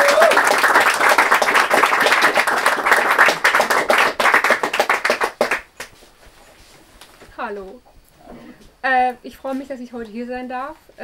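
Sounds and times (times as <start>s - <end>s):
audience applauding: 0.0s - 5.9s.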